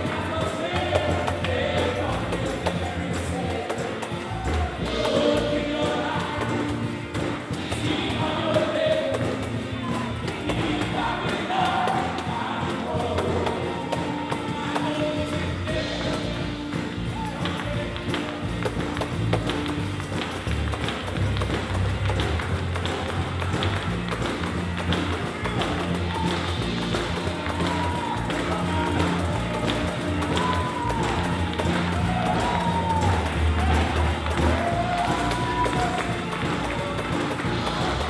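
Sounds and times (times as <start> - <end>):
gospel music: 0.0 - 38.0
tambourine struck and shaken: 0.0 - 38.0
voices singing: 0.0 - 38.0.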